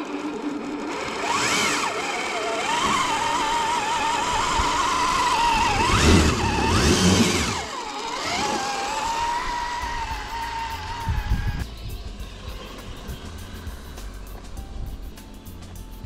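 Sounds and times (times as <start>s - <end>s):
rc car motor whining: 0.0s - 16.0s.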